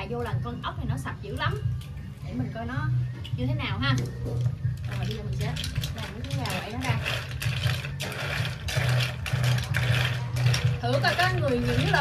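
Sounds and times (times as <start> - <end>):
snail shells clattering and scraping: 4.7 - 12.0.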